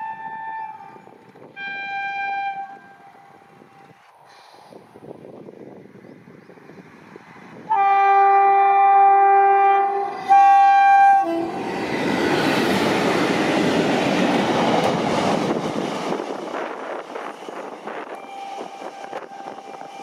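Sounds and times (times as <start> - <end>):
locomotive air horn: 0.0 - 4.0, 7.7 - 11.6, 18.0 - 20.0
train rumbling on rails: 0.0 - 20.0.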